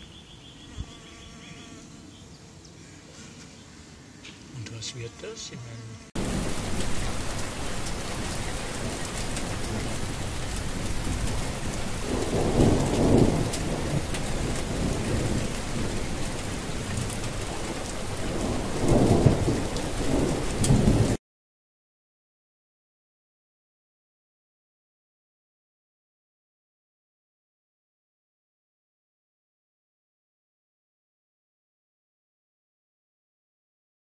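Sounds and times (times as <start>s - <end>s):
rain falling: 6.1s - 21.2s
thunder rumbling: 6.2s - 21.2s.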